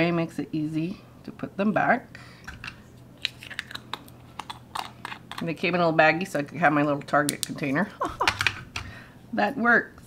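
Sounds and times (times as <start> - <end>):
plastic jar and lid handled: 2.5 - 5.5.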